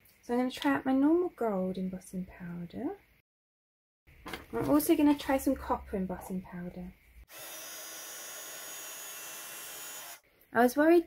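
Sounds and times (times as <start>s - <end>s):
heat gun blowing with whine: 7.3s - 10.2s.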